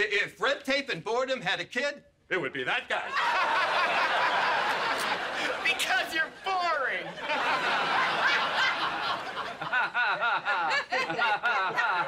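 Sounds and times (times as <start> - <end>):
studio audience laughing: 3.1 - 12.0.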